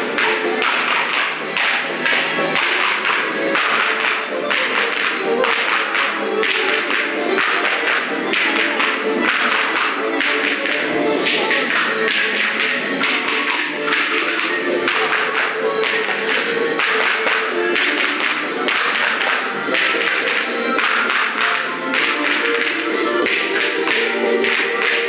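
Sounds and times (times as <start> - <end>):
children playing hand percussion: 0.0 - 25.0
recorded backing music: 0.0 - 25.0.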